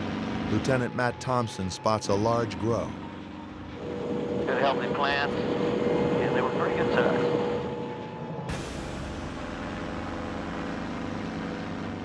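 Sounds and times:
helicopter engine and rotor: 0.0s - 12.0s.

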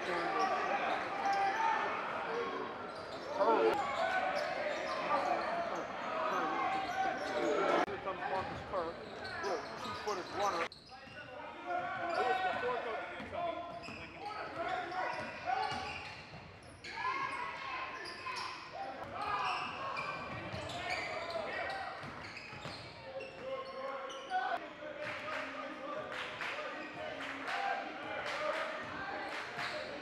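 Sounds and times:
voices in a gym: 0.0s - 30.0s.

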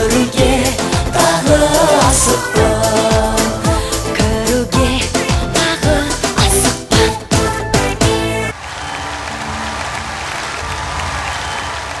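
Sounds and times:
audience applause: 8.5s - 12.0s.

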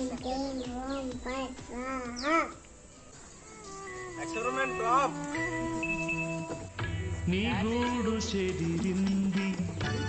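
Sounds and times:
electronic background music: 0.0s - 10.0s.

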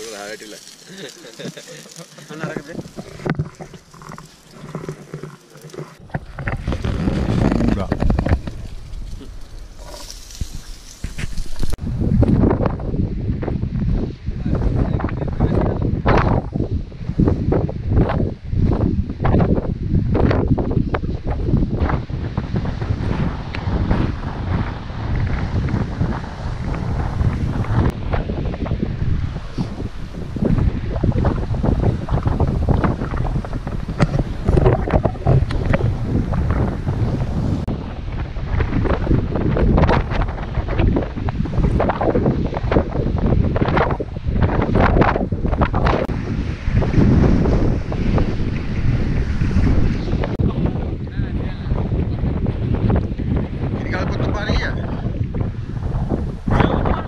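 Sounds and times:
wind buffeting microphone: 1.4s - 57.0s.

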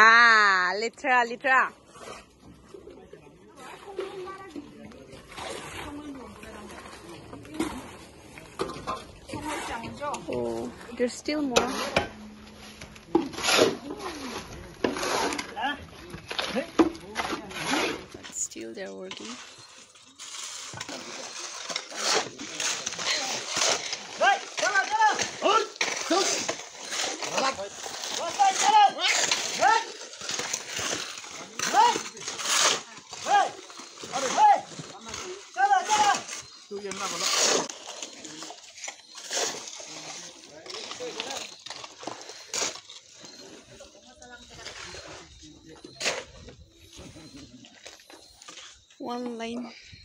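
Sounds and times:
shovels scraping wet concrete: 0.0s - 2.8s, 3.5s - 50.0s.

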